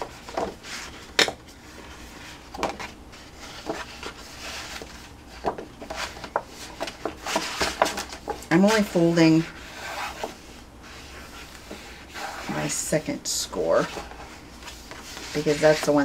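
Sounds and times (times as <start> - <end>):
paper rustling: 0.0 - 12.6.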